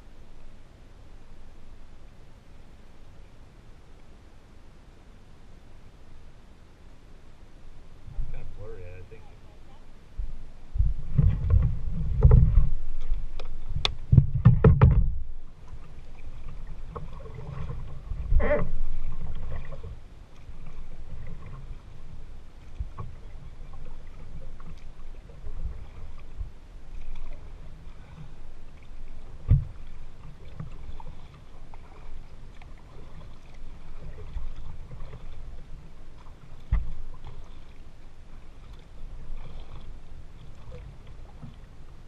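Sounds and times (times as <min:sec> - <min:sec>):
low rumble: 0:07.6 - 0:30.2
paddle strokes: 0:07.8 - 0:42.0
water slapping hull: 0:10.2 - 0:42.0
knocks on kayak: 0:14.1 - 0:15.2.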